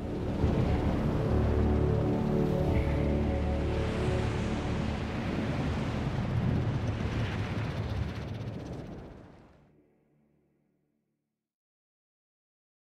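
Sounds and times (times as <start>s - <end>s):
held low musical notes: 0.0s - 6.8s
deep surf-like rumbling: 0.0s - 9.6s.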